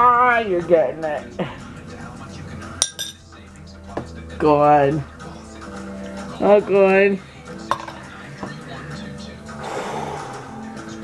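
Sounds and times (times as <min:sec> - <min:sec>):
faint background music: 0:00.0 - 0:11.0
plastic cup knocking on table: 0:07.7 - 0:08.0.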